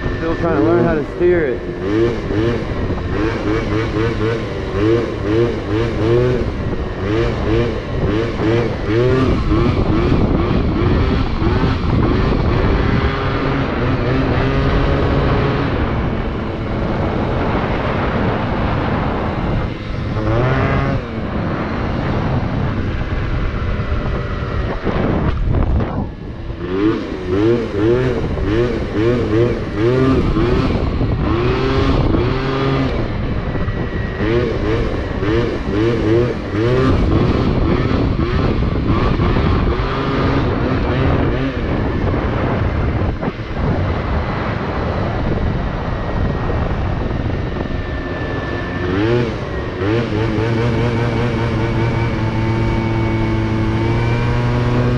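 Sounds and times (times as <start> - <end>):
two-stroke scooter engine revving: 0.0 - 54.9.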